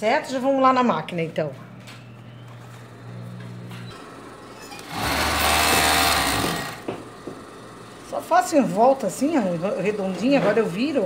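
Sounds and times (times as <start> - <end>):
sewing machine running: 3.9 - 11.0.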